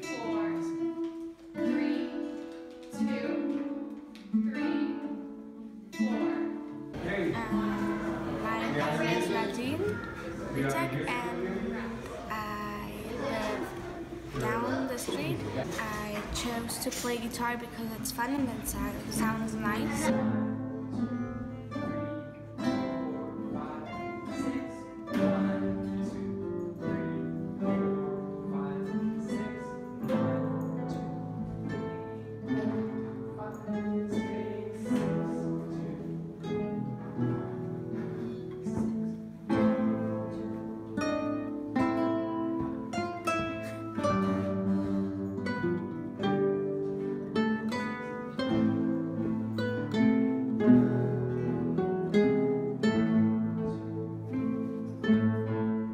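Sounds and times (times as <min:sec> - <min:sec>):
classical guitars playing: 0:00.0 - 0:55.9.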